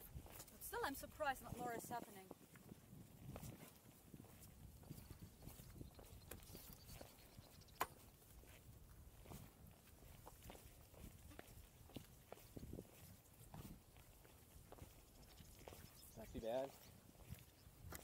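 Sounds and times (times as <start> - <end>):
faint footstep taps and scuffs on rock: 0.0 - 18.0.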